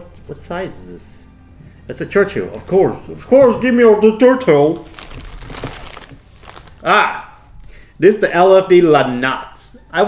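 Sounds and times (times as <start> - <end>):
plastic packaging crinkling: 4.8 - 7.9.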